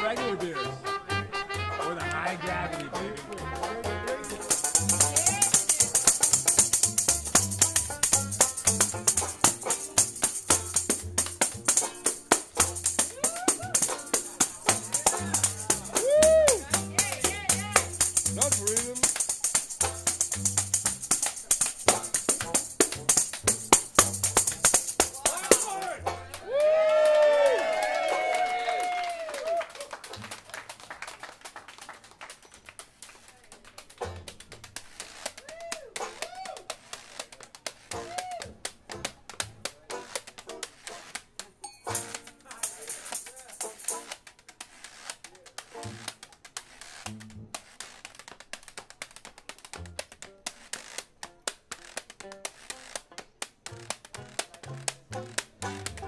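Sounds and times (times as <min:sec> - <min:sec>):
street band music: 0:00.0 - 0:27.1, 0:33.6 - 0:44.5, 0:49.7 - 0:56.0
tambourine jingling: 0:04.1 - 0:26.0, 0:41.6 - 0:44.2.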